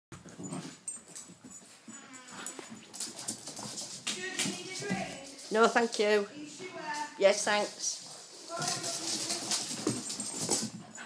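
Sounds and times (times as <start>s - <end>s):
small dogs playing: 0.2s - 7.2s, 7.8s - 11.0s.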